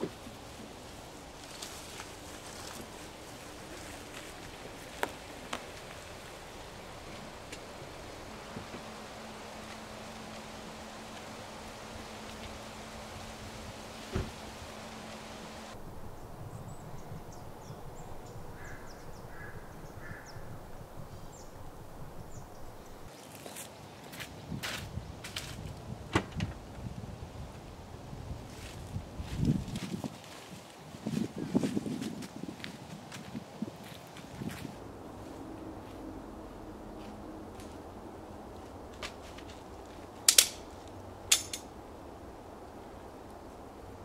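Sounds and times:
footsteps crunching dry leaves: 0:00.1 - 0:07.6, 0:23.1 - 0:25.7, 0:28.5 - 0:36.1.

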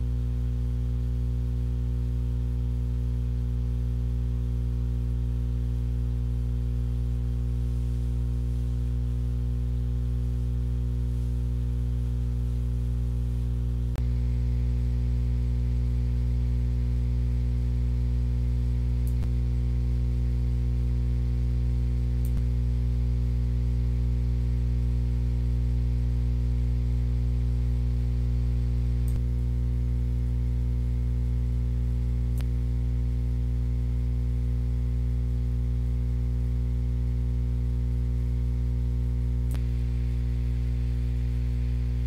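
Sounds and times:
electrical mains hum: 0:00.0 - 0:42.0
faint clicks: 0:19.0 - 0:19.3, 0:29.0 - 0:29.2, 0:32.3 - 0:32.5.

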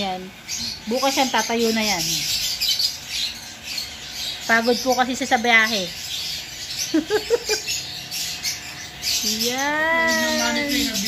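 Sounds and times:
small birds chattering: 0:00.0 - 0:11.0.

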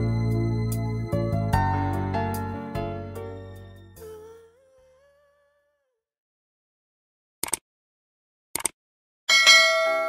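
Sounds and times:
mouse double click: 0:08.6 - 0:08.8
bright bell ding: 0:09.3 - 0:10.0
low chime notes: 0:09.3 - 0:10.0.

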